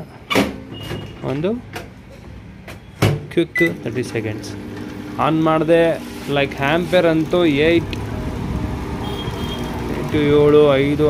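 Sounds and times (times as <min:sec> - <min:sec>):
microwave oven humming: 0:03.7 - 0:10.2.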